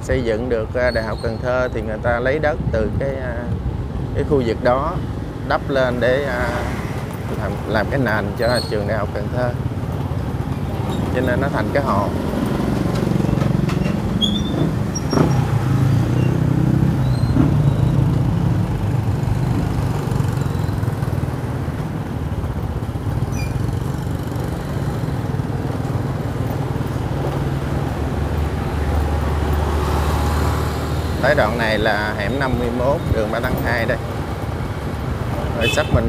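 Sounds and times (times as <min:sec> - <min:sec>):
scooter engines humming: 0:02.2 - 0:36.0.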